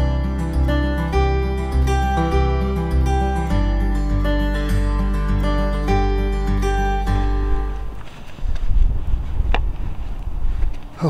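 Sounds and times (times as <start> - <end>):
acoustic guitar music: 0.0 - 8.6
wind buffeting microphone: 7.6 - 11.0.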